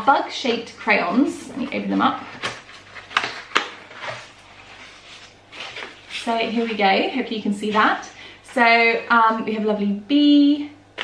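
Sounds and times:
cardboard scraping: 2.2 - 6.8
cardboard lid snapping: 2.4 - 3.8.

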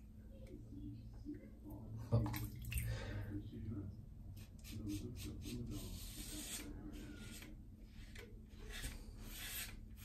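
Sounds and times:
water splashing in basin: 2.1 - 3.1.

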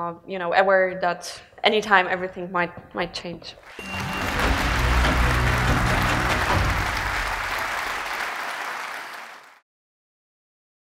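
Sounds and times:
audience applauding: 3.6 - 9.6
low held music: 3.8 - 8.0.

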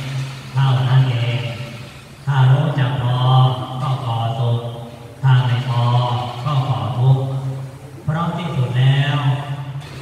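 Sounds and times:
monk chanting: 0.0 - 9.8.

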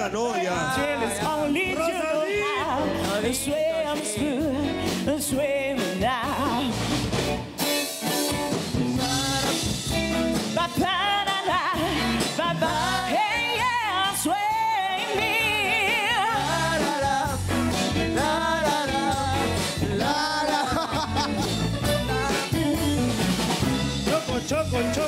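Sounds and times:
band with keyboard drums guitar: 0.0 - 25.0
woman singing into microphone: 0.4 - 6.9, 10.6 - 21.3, 22.0 - 23.1.

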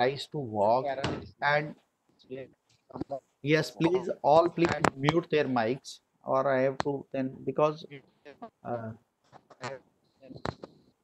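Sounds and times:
presenter speaking: 3.0 - 5.9.

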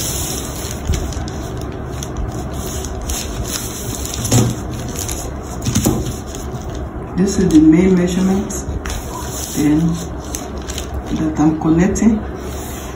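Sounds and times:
ruler and marker scraping paper: 8.9 - 10.4.

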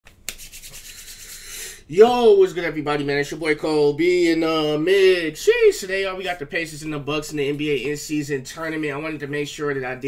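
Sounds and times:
hand brushing hair and clothing: 0.1 - 1.7.

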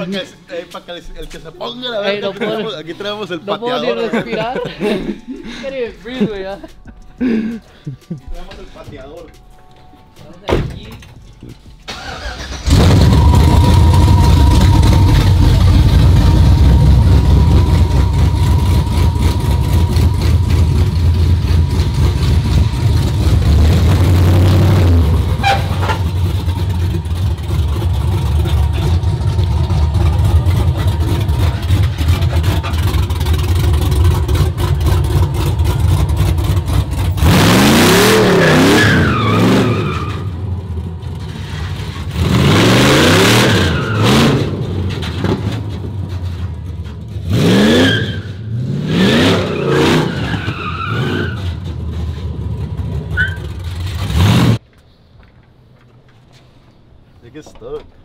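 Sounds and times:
truck engine starting: 11.2 - 54.6
truck engine revving: 11.9 - 54.6.

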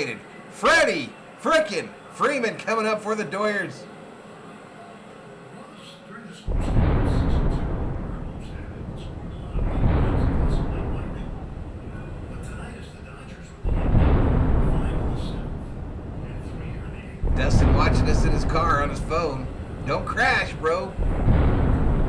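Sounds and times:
thunder booms: 6.5 - 22.0.

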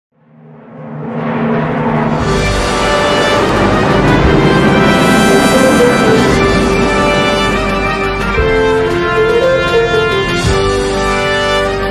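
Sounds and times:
orchestral fanfare: 1.5 - 11.9.

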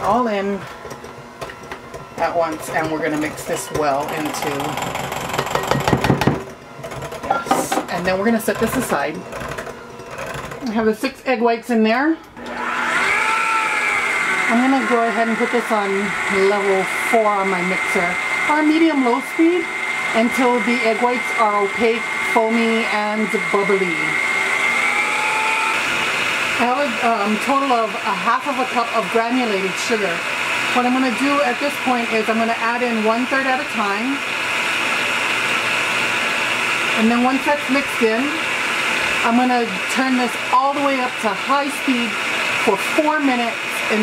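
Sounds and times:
electric hand mixer running: 0.0 - 11.1, 12.4 - 44.0
motor whir with high whine: 12.4 - 32.0.

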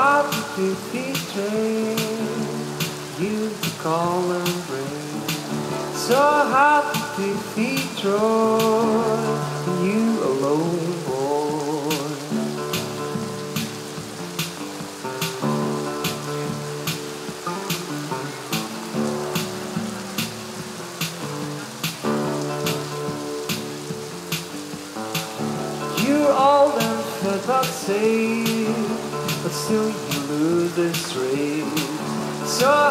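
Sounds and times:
fingerstyle nylon-string guitar: 0.0 - 32.9
person singing: 0.0 - 32.9.

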